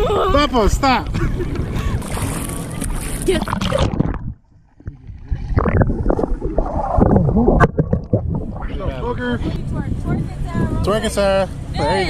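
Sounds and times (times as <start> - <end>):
underwater sloshing and gurgling: 1.0 - 9.7.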